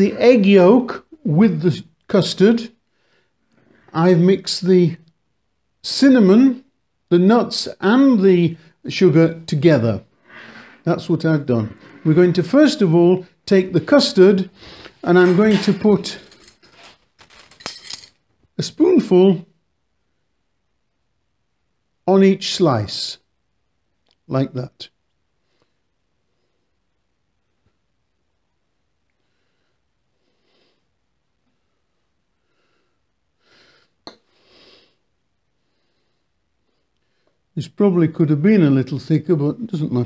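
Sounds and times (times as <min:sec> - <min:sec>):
breathing through the nose: 0:10.1 - 0:10.9.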